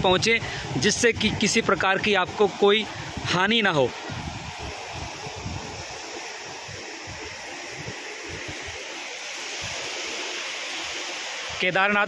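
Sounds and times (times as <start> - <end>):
wind buffeting microphone: 0.0 - 8.8
floodwater rushing: 0.0 - 12.0.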